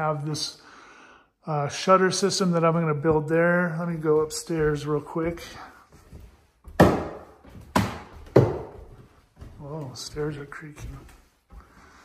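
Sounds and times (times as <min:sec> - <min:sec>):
stairs creaking: 0:02.9 - 0:12.0
heavy footsteps on wooden stairs: 0:03.0 - 0:12.0.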